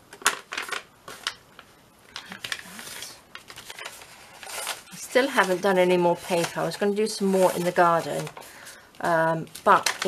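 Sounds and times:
paper rustling and crackling: 0.2 - 10.0.

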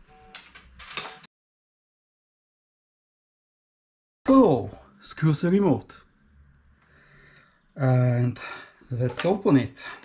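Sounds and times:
faint room noise: 4.3 - 10.0.

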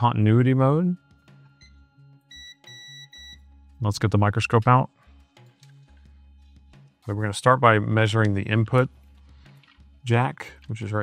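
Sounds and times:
multimeter continuity beeps: 1.5 - 3.4.

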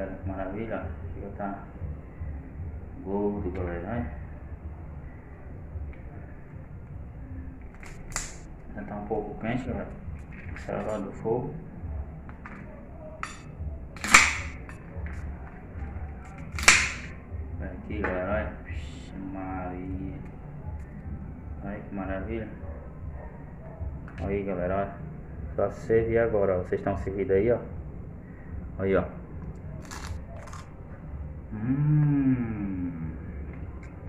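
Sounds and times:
crab shell cracking: 7.7 - 8.5, 16.3 - 17.1, 29.4 - 30.8
man biting crunchy crab: 29.8 - 30.7.

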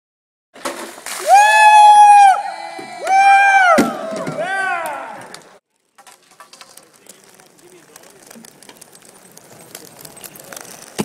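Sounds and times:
water splash: 0.6 - 1.8
person screaming: 1.2 - 5.2.

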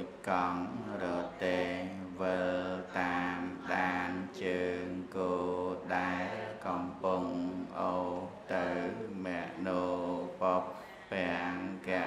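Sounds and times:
person chanting on held notes: 0.0 - 12.0.

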